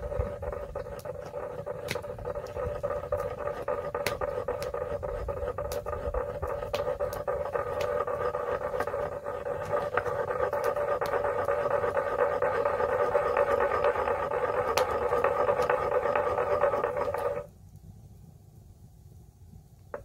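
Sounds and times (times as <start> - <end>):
stone pestle grinding in mortar: 0.0 - 17.5
wood fire crackling: 0.0 - 17.9.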